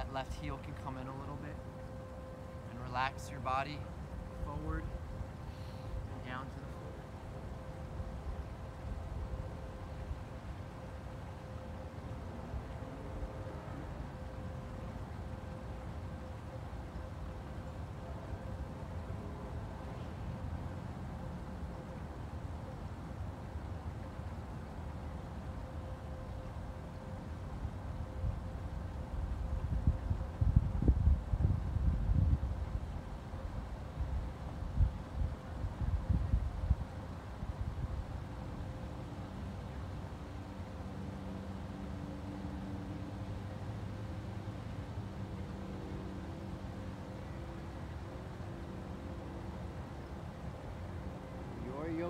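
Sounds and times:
distant engine droning: 0:00.0 - 0:29.6
wind buffeting microphone: 0:27.5 - 0:38.9.

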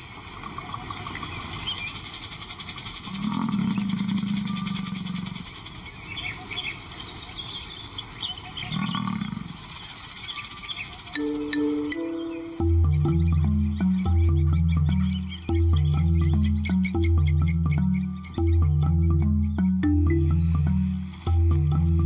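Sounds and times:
birds chirping: 0:00.0 - 0:22.0
lion calling low: 0:03.1 - 0:05.5.

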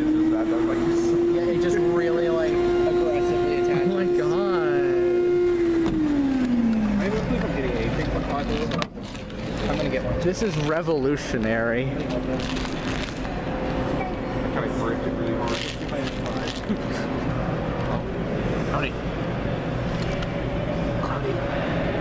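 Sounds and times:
vacuum pump humming: 0:00.0 - 0:22.0.

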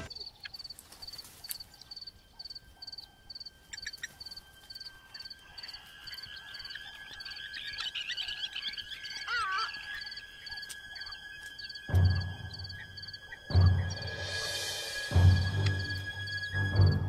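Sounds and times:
birds singing: 0:00.0 - 0:17.0
steady high drone: 0:04.4 - 0:17.0.

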